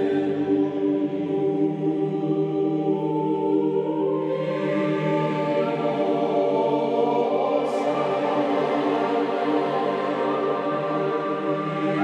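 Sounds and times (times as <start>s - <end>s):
choir chanting in held notes: 0.0s - 12.0s.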